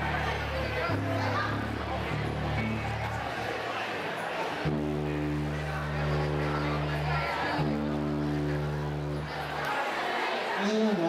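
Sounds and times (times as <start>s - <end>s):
audience chatter: 0.0s - 11.0s
low amplified electric note: 4.6s - 9.5s.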